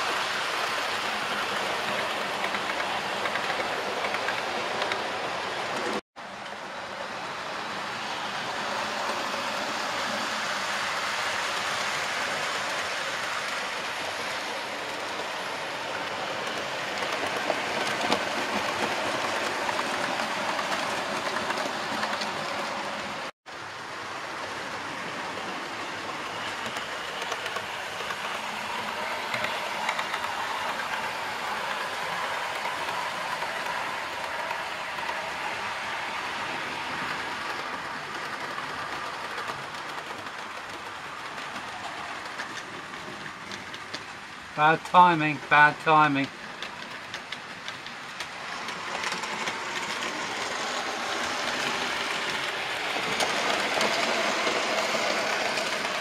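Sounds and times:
model train wheels rumbling on rails: 0.0 - 56.0.

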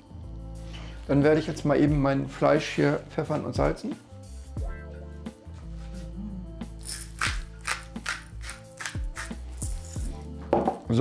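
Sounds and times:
background music chords: 0.0 - 11.0
spice mill grinding: 6.8 - 10.1.

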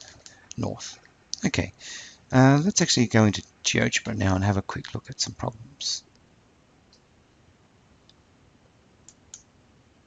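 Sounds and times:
computer mouse clicks: 9.0 - 9.5.

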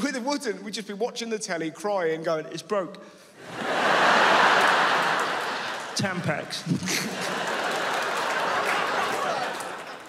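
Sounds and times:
audience laughing: 3.4 - 10.0.

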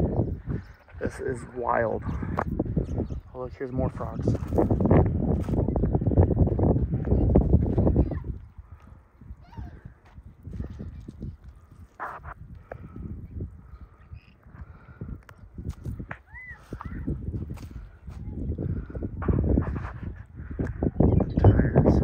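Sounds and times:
footsteps crunching on mud: 4.2 - 7.9, 15.6 - 18.5.

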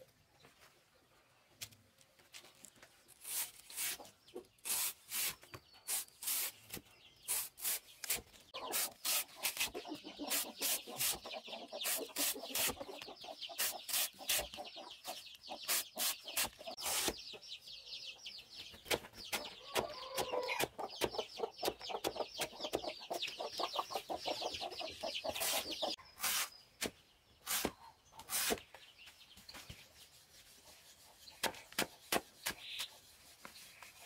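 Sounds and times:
hen clucking: 8.5 - 17.5, 19.0 - 26.0.

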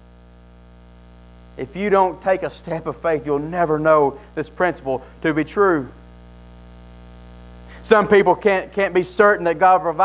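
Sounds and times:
electrical mains hum: 0.0 - 10.0
man talking: 1.6 - 6.0, 7.8 - 10.0.

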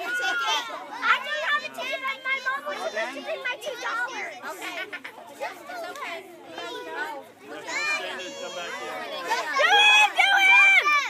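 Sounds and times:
children chattering and calling out: 0.0 - 11.0
children's high-pitched shouts: 0.0 - 11.0.

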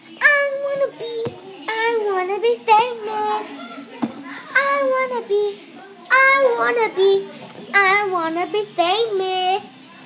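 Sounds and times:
child singing: 0.0 - 10.0.

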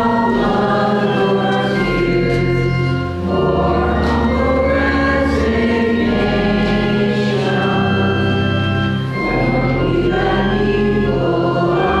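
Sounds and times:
church organ: 0.0 - 12.0
voices singing a hymn: 0.0 - 12.0.

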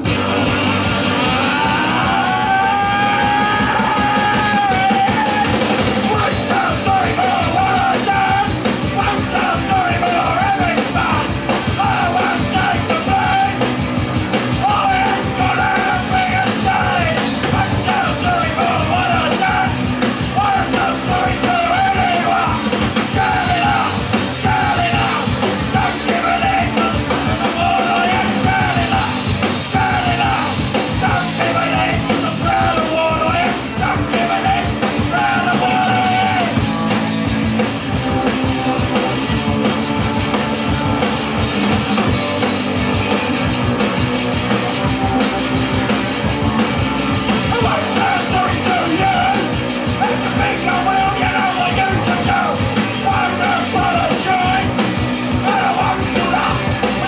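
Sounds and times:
bass and drums: 0.0 - 57.0
distorted electric guitars: 0.0 - 57.0
punk band playing: 0.0 - 57.0
man shouting vocals: 1.4 - 13.6, 14.6 - 19.8, 29.7 - 36.6, 47.5 - 54.8, 55.4 - 56.6.

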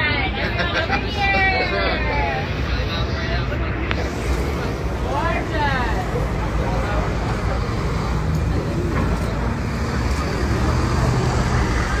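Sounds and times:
faint voices: 0.0 - 12.0
low traffic rumble: 0.0 - 12.0.

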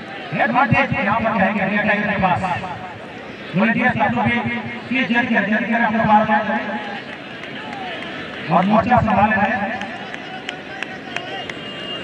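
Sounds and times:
man commentating: 0.3 - 2.9, 3.5 - 7.0, 8.5 - 11.5
crowd murmur: 1.4 - 12.0.

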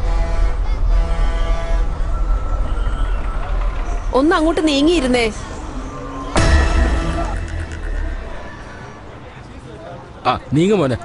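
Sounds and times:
bus horn: 0.0 - 2.1
bus engine rumbling: 0.0 - 11.0.

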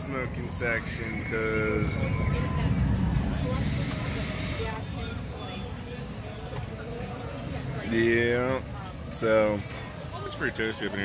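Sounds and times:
electronic cigarette draw hiss: 3.6 - 4.8.

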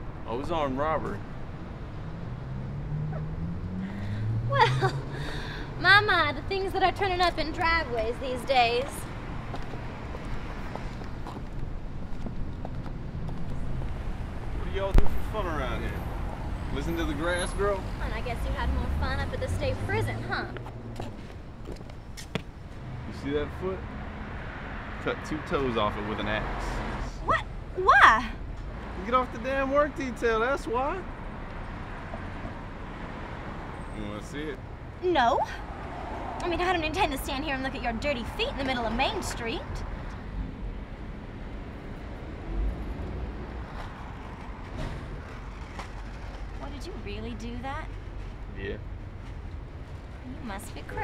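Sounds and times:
traffic rumble: 0.0 - 51.0
footsteps on pavement: 8.8 - 14.1, 20.4 - 22.9.

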